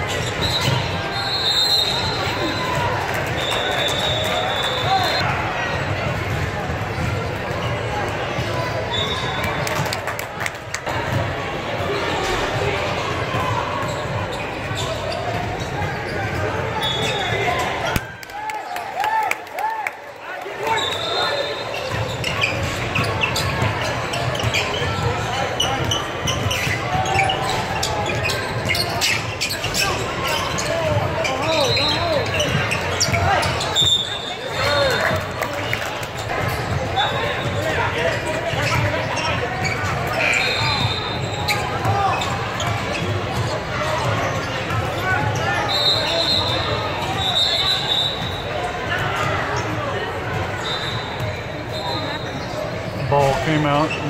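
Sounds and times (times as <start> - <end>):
babble of many voices: 0.0 - 54.0.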